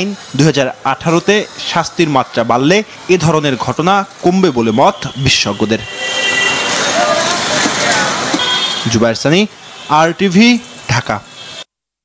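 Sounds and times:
road traffic hiss: 0.0s - 11.7s
indistinct crowd voices: 4.5s - 11.6s.

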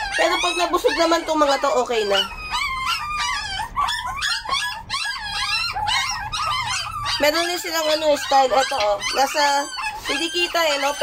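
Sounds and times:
puppies whining and crying: 0.0s - 11.0s.

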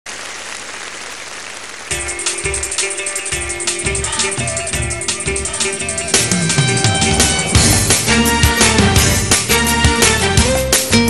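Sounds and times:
audience applauding: 0.1s - 4.4s
music with heavy beat: 1.9s - 11.0s.

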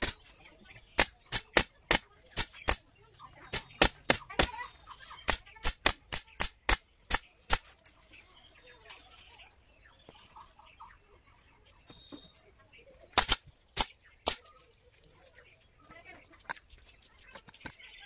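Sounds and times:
pneumatic staple gun shots: 13.2s - 14.4s.

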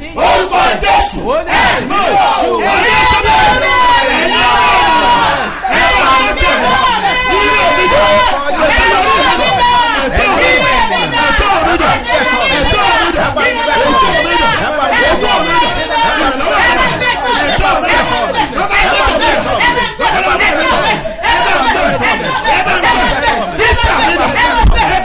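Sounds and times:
congregation praying aloud: 0.0s - 25.0s.

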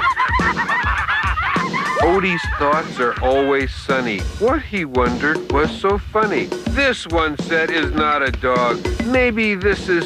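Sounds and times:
cartoon dogs cackling: 0.0s - 3.6s
rap backing beat: 0.0s - 10.0s.

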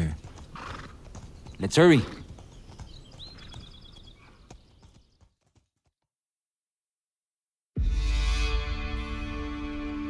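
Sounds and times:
horses hooves clip-clopping: 0.0s - 6.1s.

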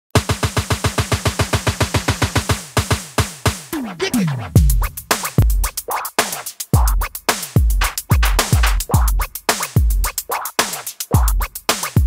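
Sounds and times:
electronic kick drum roll: 0.2s - 5.9s, 6.8s - 10.2s.

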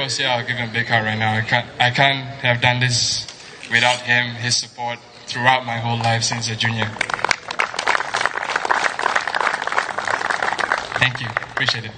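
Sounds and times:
audience applauding: 6.9s - 11.9s.

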